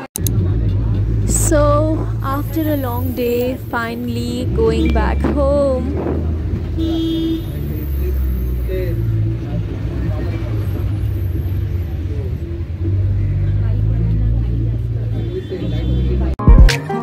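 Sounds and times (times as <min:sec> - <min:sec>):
bus engine and road noise: 0:00.0 - 0:16.4
passengers talking indistinctly: 0:00.0 - 0:16.4.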